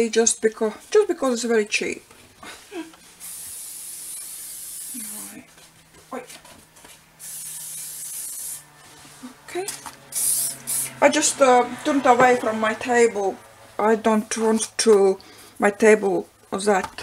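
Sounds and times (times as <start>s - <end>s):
aerosol can spraying: 3.2s - 5.4s, 7.2s - 8.7s, 10.1s - 11.0s.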